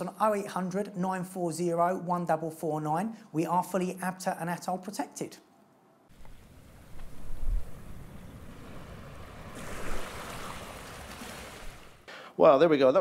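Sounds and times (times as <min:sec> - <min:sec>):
wind and water noise: 0:06.1 - 0:12.1.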